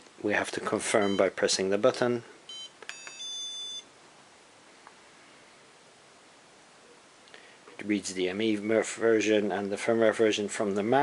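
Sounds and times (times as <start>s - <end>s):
high electronic beep: 2.5s - 3.9s.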